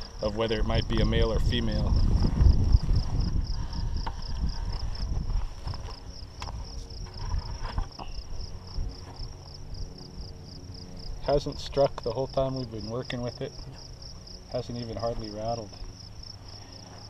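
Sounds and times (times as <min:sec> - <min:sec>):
low rumbling handling noise: 0:00.0 - 0:16.2
insect chirping: 0:00.0 - 0:17.0.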